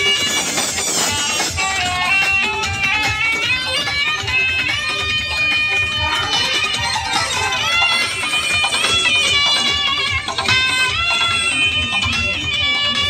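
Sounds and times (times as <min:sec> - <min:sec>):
loud music with thudding beat: 0:00.0 - 0:13.0.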